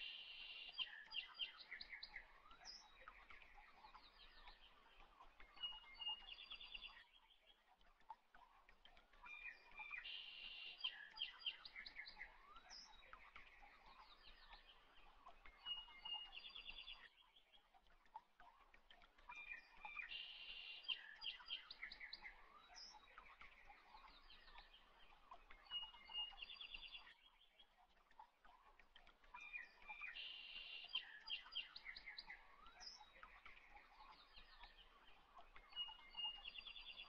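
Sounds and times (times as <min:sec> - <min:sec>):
birds chirping and trilling: 0:29.2 - 0:37.0.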